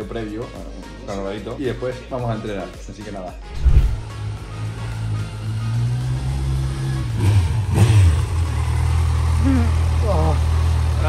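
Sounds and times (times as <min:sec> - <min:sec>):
motorcycle engine pulling away: 0:04.1 - 0:11.0.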